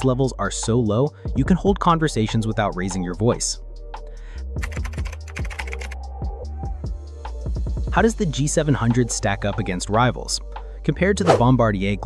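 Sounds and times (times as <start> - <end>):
background music with low bass: 0.0 - 12.0.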